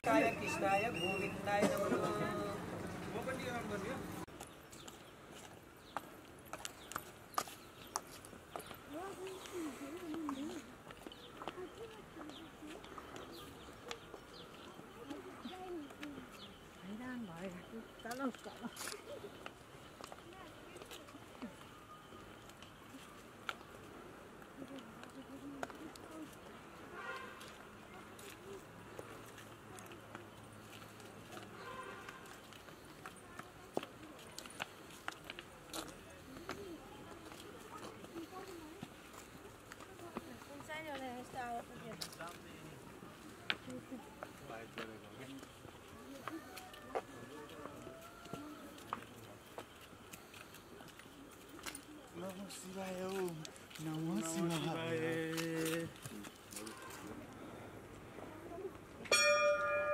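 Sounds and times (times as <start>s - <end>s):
footsteps on dirt path: 0.1s - 57.6s
small birds chirping: 4.3s - 23.8s
faint voices: 8.5s - 59.9s.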